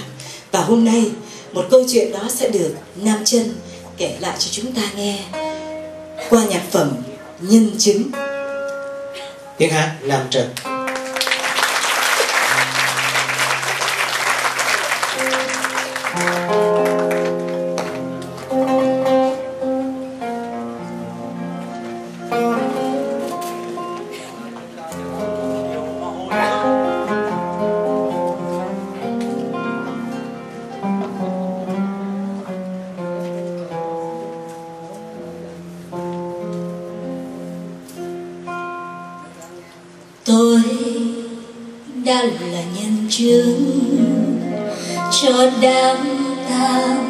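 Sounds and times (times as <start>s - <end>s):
acoustic guitar playing: 0.0s - 47.0s
woman singing: 40.3s - 47.0s.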